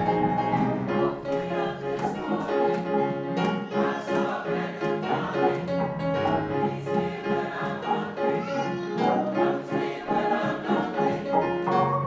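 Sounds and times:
gospel choir singing: 0.0 - 12.0
instrumental accompaniment: 0.0 - 12.0.

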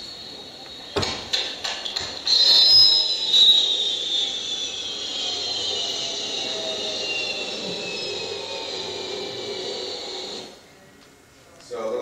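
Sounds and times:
jet engine whine: 0.0 - 10.8.

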